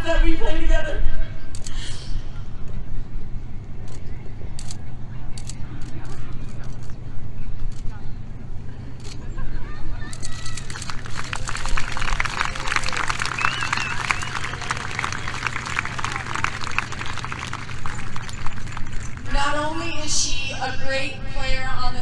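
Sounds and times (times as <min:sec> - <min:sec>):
crowd applauding and cheering: 0:10.2 - 0:19.4
low hum: 0:10.5 - 0:21.4.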